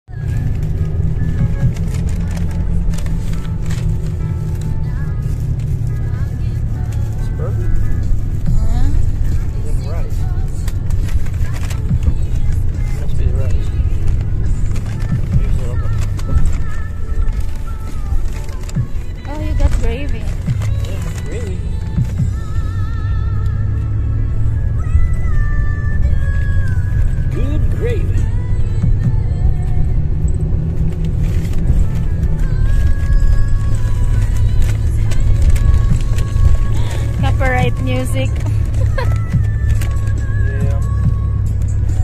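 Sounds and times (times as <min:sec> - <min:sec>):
background music: 0:00.0 - 0:42.0
bus engine and road rumble: 0:00.0 - 0:42.0
paper bags and wrappers rustling: 0:00.1 - 0:22.4, 0:30.5 - 0:42.0.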